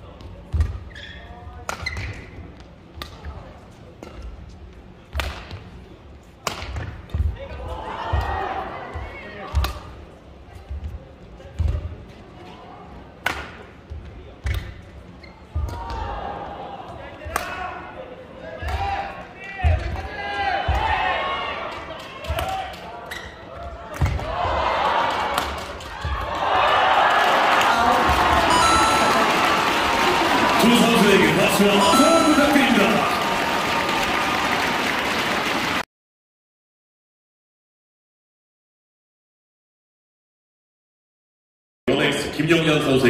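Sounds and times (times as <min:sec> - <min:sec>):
rackets hitting shuttlecock: 0:06.4 - 0:06.9
crowd cheering: 0:24.2 - 0:35.8.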